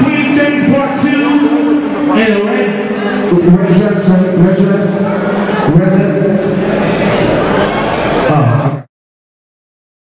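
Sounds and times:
man chanting over sound system: 0:00.0 - 0:06.6.

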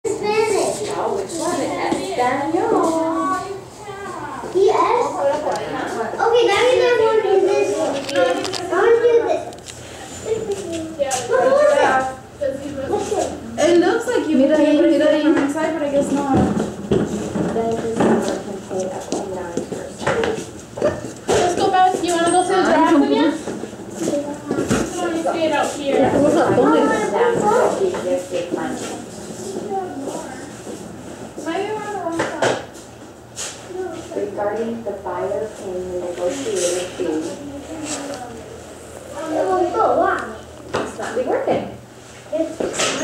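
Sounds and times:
children talking: 0:00.0 - 0:32.9, 0:33.6 - 0:43.0.

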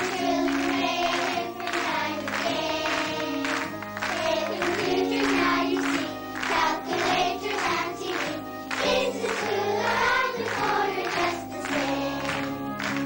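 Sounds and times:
children's choir singing: 0:00.0 - 0:13.0.

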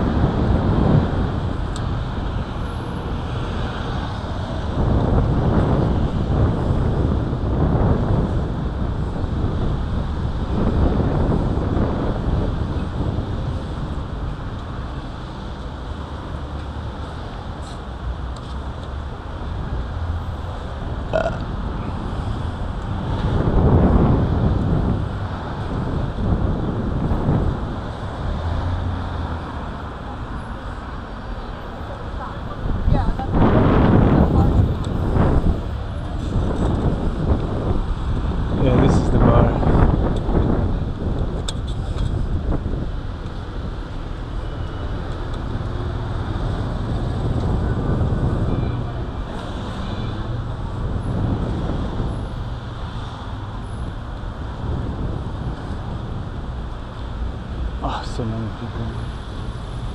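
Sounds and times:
wind buffeting microphone: 0:00.0 - 0:16.4, 0:19.1 - 0:59.9
car traffic: 0:00.0 - 0:59.9.

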